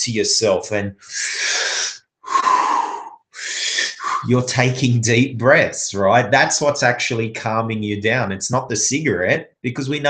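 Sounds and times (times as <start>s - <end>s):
man breathing deeply: 1.0s - 4.3s.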